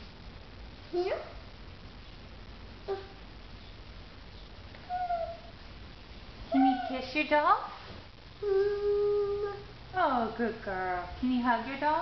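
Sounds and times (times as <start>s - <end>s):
woman speaking: 6.5s - 7.8s, 9.9s - 12.0s
young child's high vocal sound: 8.4s - 9.7s.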